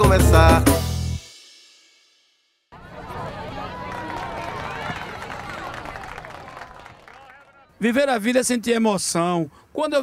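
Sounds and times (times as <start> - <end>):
crowd hubbub: 2.7 - 7.8.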